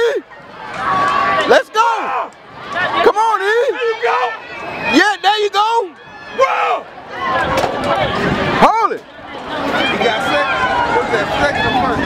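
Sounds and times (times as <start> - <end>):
spectators yelling: 0.0 - 12.0.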